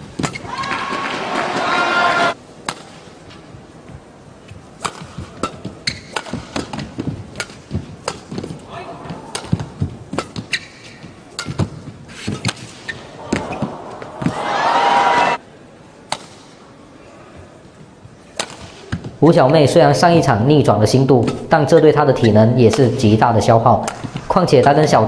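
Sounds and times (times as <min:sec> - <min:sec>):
crowd voices: 0:13.1 - 0:15.5
rackets striking shuttlecock: 0:18.4 - 0:19.0, 0:23.8 - 0:24.3.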